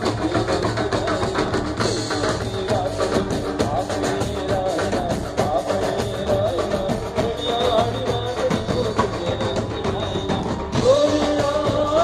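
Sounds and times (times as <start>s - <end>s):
fast drum beat: 0.0s - 12.0s
live band playing dance music: 0.0s - 12.0s.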